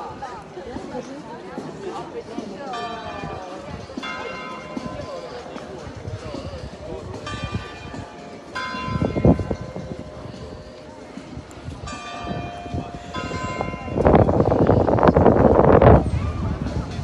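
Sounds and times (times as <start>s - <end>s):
church bell ringing: 2.7s - 5.4s, 7.2s - 11.1s, 11.8s - 16.4s.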